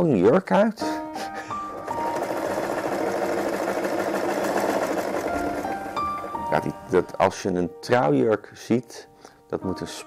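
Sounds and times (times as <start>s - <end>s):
background music: 0.0s - 10.0s
sewing machine running: 1.4s - 7.1s.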